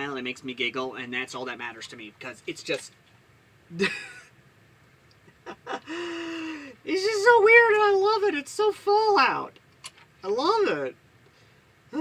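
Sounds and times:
man giggling: 0:03.7 - 0:04.3, 0:05.2 - 0:06.7.

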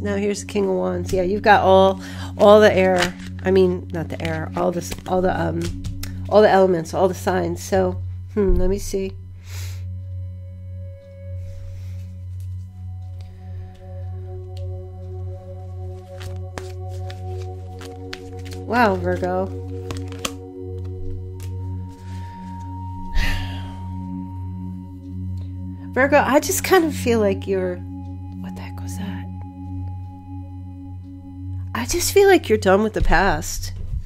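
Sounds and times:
singing bowl ambient music: 0:00.0 - 0:34.0.

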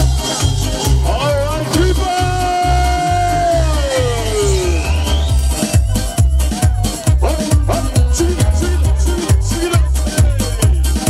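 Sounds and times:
live band playing dance music: 0:00.0 - 0:11.0
kick drum beat: 0:05.2 - 0:11.0.

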